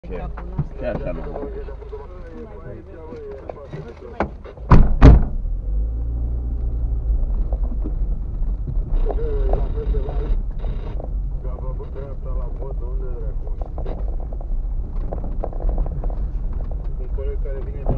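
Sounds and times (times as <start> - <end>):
car thumping over bump: 4.2 - 5.8
tyres rumbling on gravel: 5.4 - 17.9.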